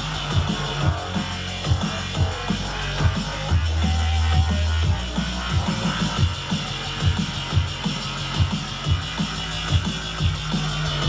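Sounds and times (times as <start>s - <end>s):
deep sub-bass line: 0.0s - 11.0s
drum and bass over sound system: 0.0s - 11.0s
fast breakbeat drum hits: 0.0s - 11.0s.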